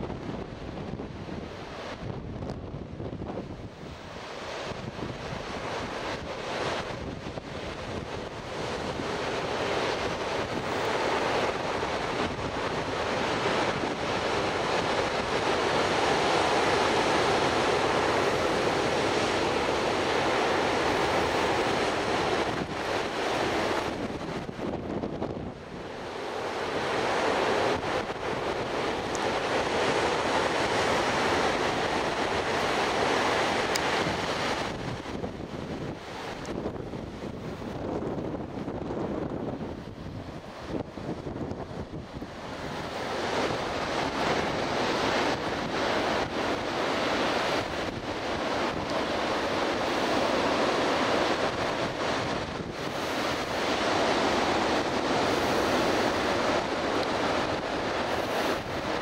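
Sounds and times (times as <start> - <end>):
surf breaking on beach: 0.0 - 59.0
wind buffeting microphone: 0.0 - 59.0.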